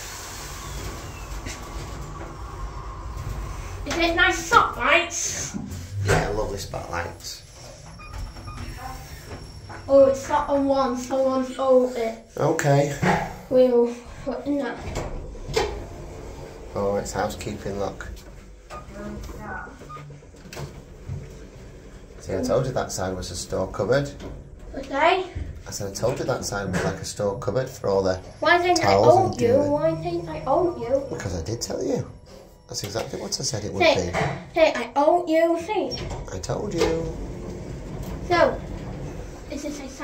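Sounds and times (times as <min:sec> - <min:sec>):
lift car rumble and hum: 0:00.0 - 0:11.9, 0:14.0 - 0:34.2, 0:36.3 - 0:40.0.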